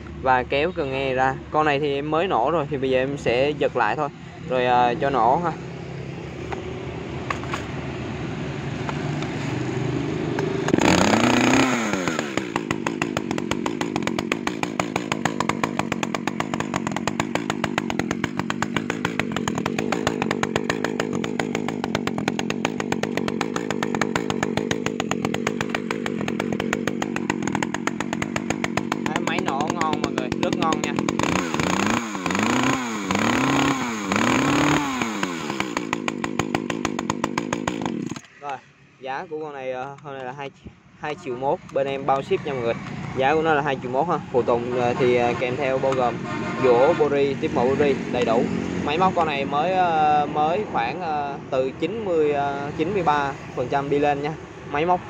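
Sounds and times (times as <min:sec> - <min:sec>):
chainsaw idling and revving: 0:03.9 - 0:38.3, 0:41.6 - 0:54.9.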